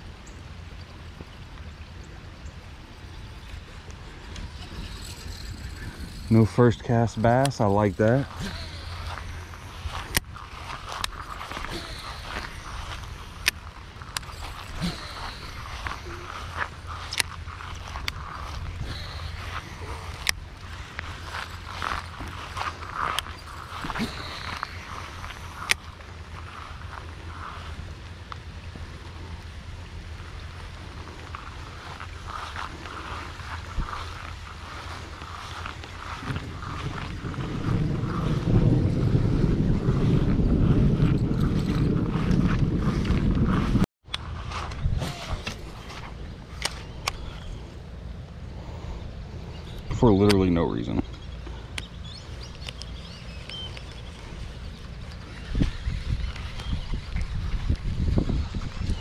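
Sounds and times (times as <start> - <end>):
wind rumble on microphone: 0.0 - 59.0
fishing reel cranking: 3.0 - 27.5
sharp reel clicks: 3.4 - 26.0.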